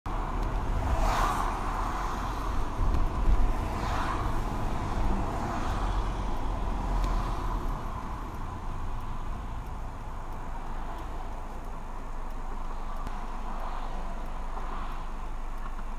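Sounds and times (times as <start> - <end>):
car engine and road rumble: 0.1 - 15.9.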